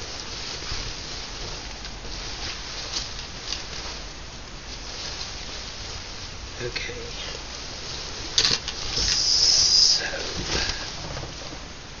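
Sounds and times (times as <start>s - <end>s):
veil fabric rustling and crinkling: 0.0s - 12.0s.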